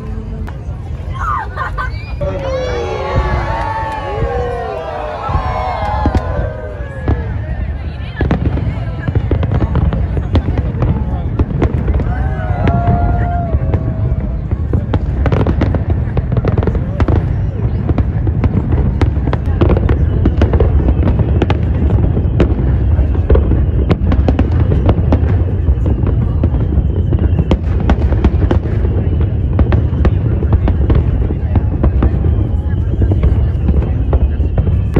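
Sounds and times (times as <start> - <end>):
firework bangs and crackles: 0.0 - 34.9.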